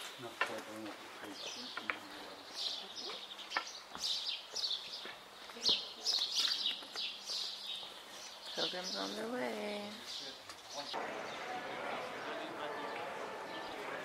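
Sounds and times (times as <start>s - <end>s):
small birds chirping: 0.0s - 14.0s.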